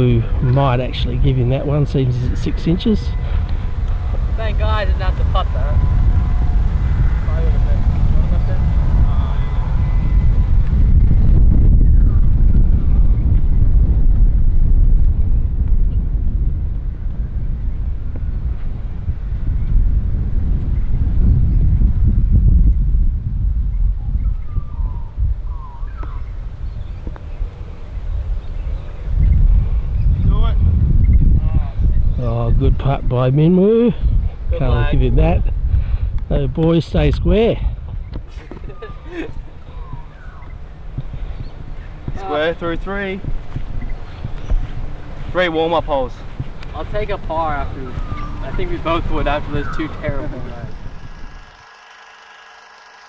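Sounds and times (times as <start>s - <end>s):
wind buffeting microphone: 0.0s - 53.0s.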